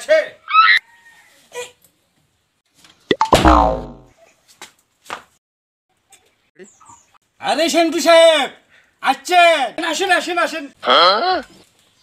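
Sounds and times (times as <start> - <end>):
cartoon boing sliding down: 3.1 - 4.1
deep thud: 3.2 - 4.0.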